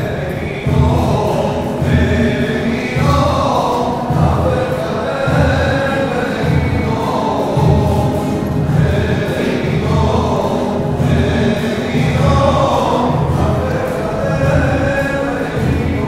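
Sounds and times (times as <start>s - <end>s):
choir singing a hymn: 0.0s - 16.0s
musical accompaniment: 0.0s - 16.0s.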